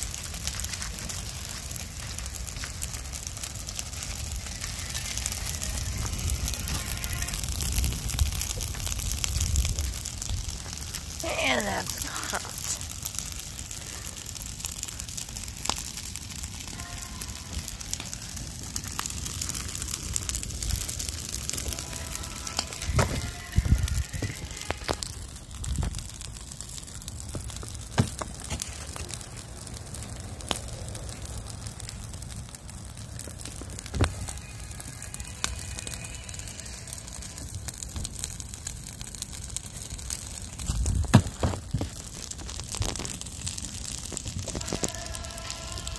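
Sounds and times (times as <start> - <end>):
burning leaves crackling: 0.0 - 45.9
fire popping: 0.0 - 45.9.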